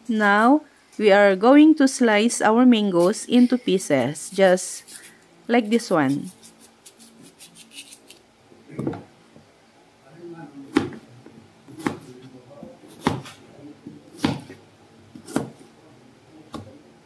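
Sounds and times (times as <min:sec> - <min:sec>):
knife cutting on plastic board: 0:11.7 - 0:12.2, 0:12.8 - 0:13.4, 0:15.2 - 0:15.6.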